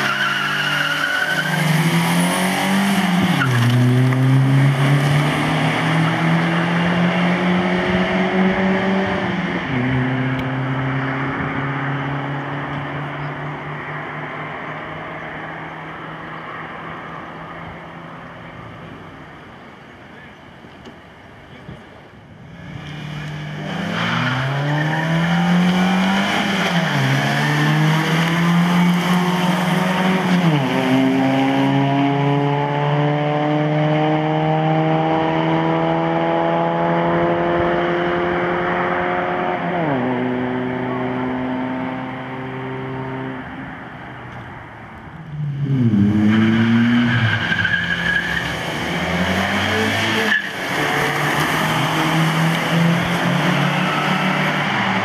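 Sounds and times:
car engine revving: 0.0 - 17.0, 22.6 - 44.4, 45.2 - 55.0
car engines accelerating: 0.0 - 55.0.

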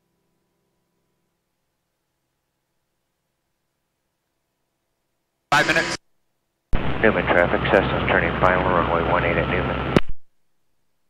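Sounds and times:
voice over radio: 5.5 - 6.0, 7.0 - 10.0
steady low hum: 6.8 - 10.0.

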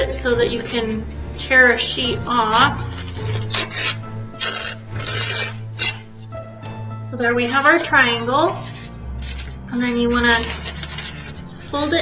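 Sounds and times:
paper towel tearing: 2.1 - 6.3, 7.5 - 12.0.

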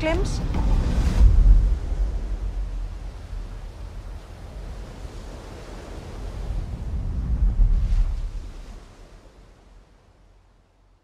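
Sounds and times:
deep low rumble: 0.0 - 5.1
sea surf breaking on beach: 0.0 - 10.0
wind: 0.0 - 11.0.

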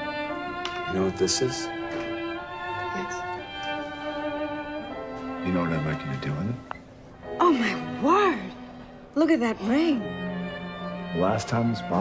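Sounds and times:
slow violin music: 0.0 - 12.0.

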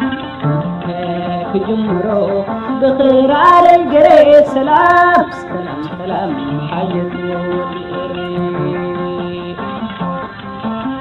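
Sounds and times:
woman singing: 0.0 - 10.2
instrumental accompaniment: 0.0 - 11.0.

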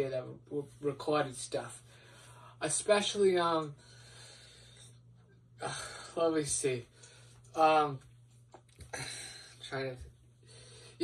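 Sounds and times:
low electrical hum: 0.0 - 11.0
man breathing in: 1.8 - 2.6, 3.8 - 5.0, 10.4 - 11.0.

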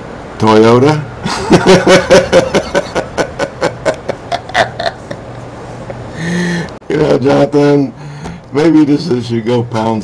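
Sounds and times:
man laughing: 1.2 - 6.4.

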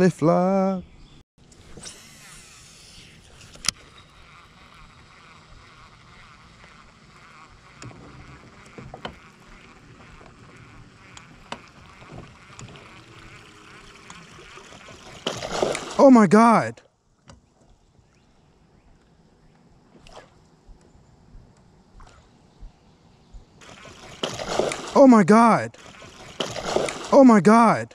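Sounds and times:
quiet outdoor ambience: 0.0 - 27.9.

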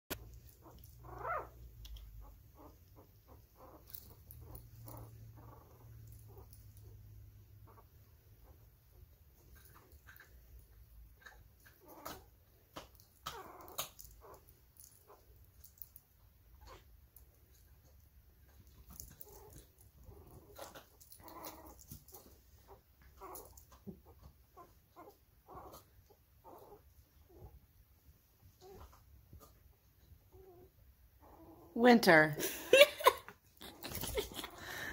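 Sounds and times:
puppy whimpering: 0.1 - 7.0, 11.2 - 15.8, 18.5 - 27.6
dog whining and grunting: 0.1 - 15.9, 16.5 - 27.6, 28.5 - 31.8, 32.7 - 34.9
rustling: 0.1 - 31.4, 33.4 - 34.9.

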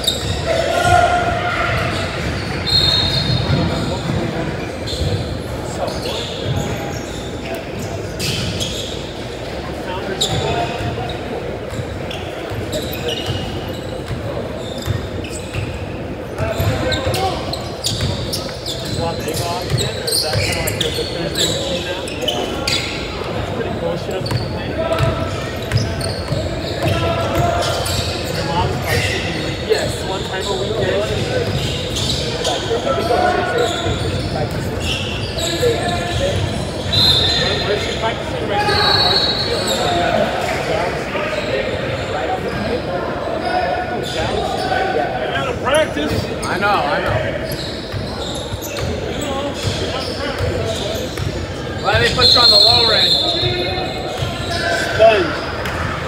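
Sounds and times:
voices in a gymnasium: 0.0 - 56.0.

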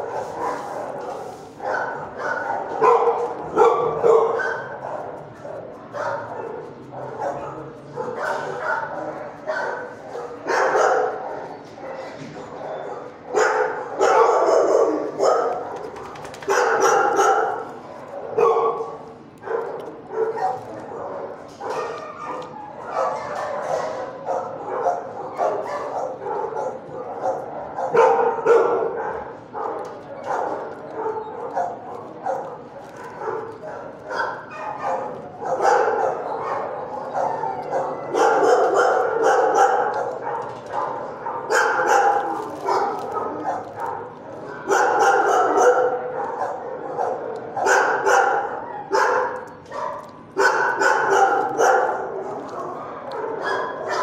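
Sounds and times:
dogs barking and yipping: 0.0 - 54.0.

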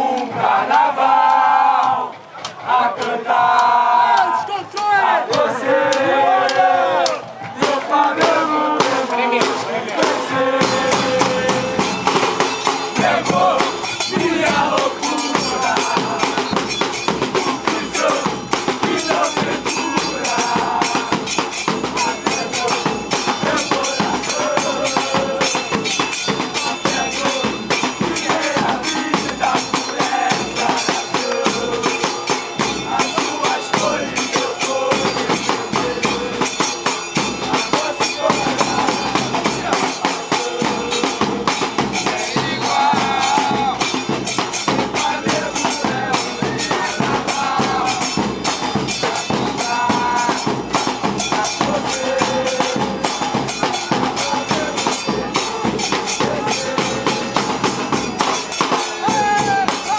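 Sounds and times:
crowd chanting in unison: 0.0 - 59.9
fast steady drumming: 0.0 - 59.9.

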